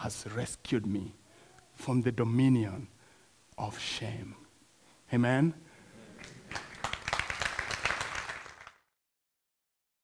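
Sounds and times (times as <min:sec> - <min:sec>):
congregation clapping: 0:06.1 - 0:09.0.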